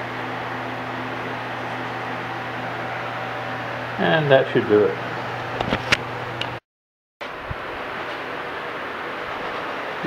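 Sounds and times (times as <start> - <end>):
low workshop hum: 0.0 - 6.6.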